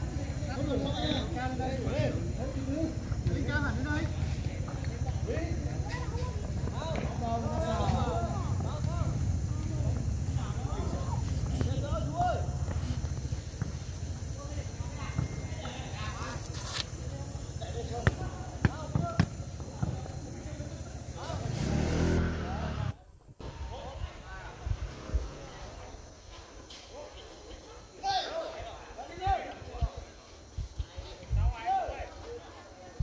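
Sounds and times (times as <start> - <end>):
steady low rumble: 1.8 - 18.6
ball being kicked: 17.9 - 20.2.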